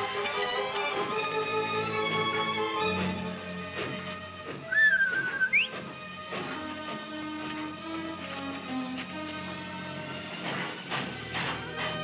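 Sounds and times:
soft orchestral music: 0:00.0 - 0:10.8
wavering whistle sliding upward: 0:04.6 - 0:05.7.

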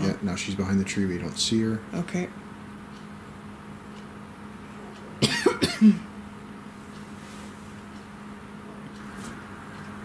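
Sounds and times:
person coughing: 0:05.2 - 0:06.1.

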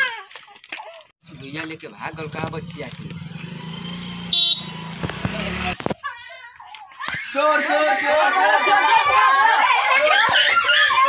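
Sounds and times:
engine running low: 0:01.3 - 0:05.8
high-pitched toot: 0:04.3 - 0:04.7.

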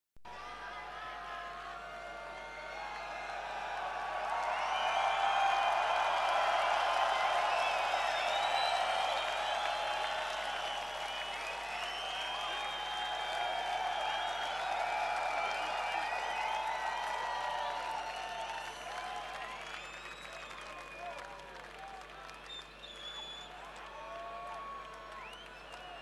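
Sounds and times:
crowd cheering and shouting: 0:00.3 - 0:19.6.

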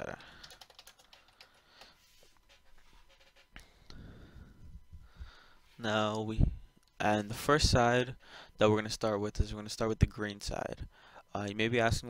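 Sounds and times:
typing on computer keyboard: 0:00.0 - 0:02.0.

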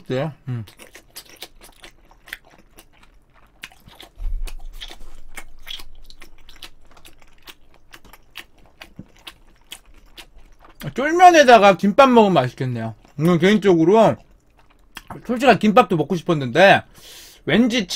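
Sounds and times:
chewing noodles: 0:00.4 - 0:15.7.

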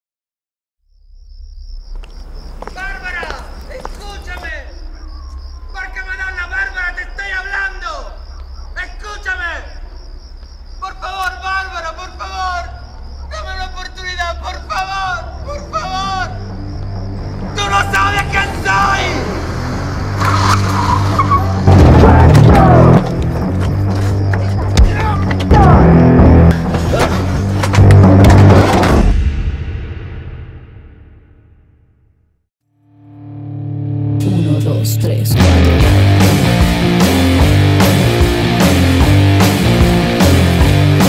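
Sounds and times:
voices: 0:02.6 - 0:10.0, 0:10.8 - 0:23.0
tyres skidding and squealing: 0:10.8 - 0:28.8.

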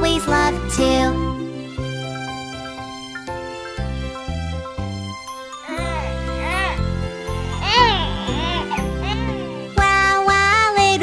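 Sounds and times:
children's song instrumental: 0:00.0 - 0:11.0
cartoon baby whimpering: 0:05.6 - 0:09.8.

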